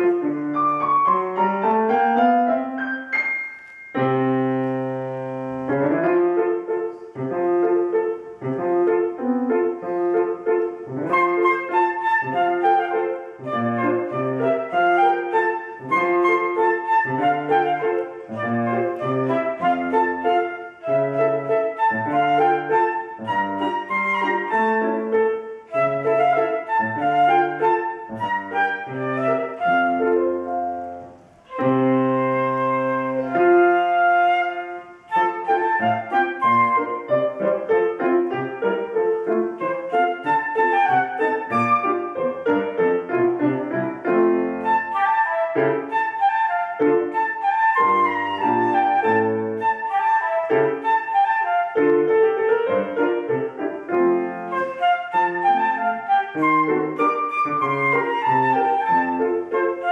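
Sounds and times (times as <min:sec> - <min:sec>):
flute melody: 0:00.0 - 0:59.9
piano accompaniment: 0:00.0 - 0:59.9.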